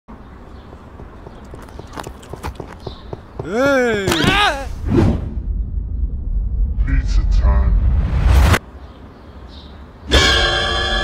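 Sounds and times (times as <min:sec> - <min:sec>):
hard shoes clicking on pavement: 0:00.4 - 0:04.6.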